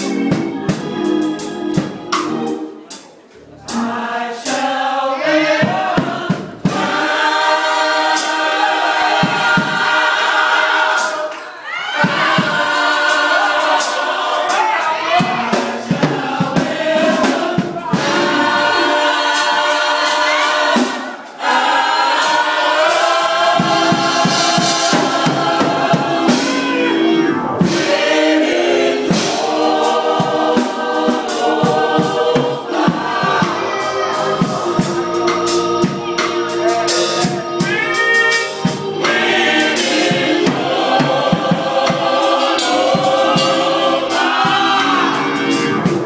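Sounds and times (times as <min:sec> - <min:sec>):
gospel choir singing: 0:00.0 - 0:46.0.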